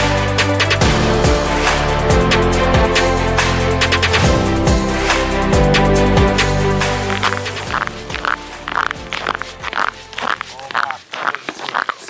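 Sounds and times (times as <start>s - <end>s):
background music: 0.0s - 11.3s
footsteps crunching on ice: 6.9s - 12.0s.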